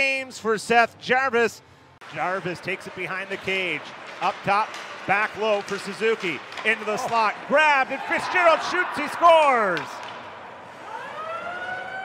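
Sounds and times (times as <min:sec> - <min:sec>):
arena goal siren: 0:10.8 - 0:12.0.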